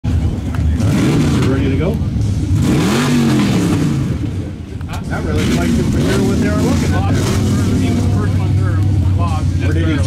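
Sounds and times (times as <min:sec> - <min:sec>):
truck engines idling and revving: 0:00.0 - 0:10.0.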